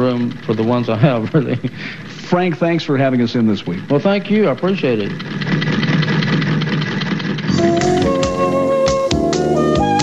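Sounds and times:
sewing machine clattering: 0.0 - 10.0.

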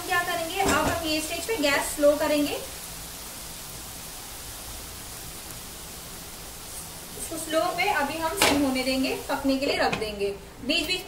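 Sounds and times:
vegetables hissing in oil: 0.0 - 11.0.

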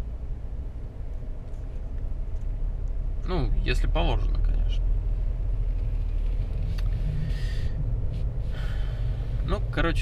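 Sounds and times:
road and tyre rumble in car: 0.0 - 10.0.

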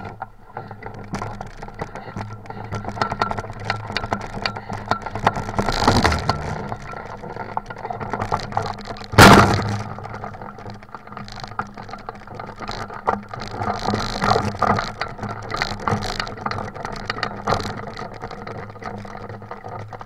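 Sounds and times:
metal frame rattling and clicking: 0.0 - 20.0.

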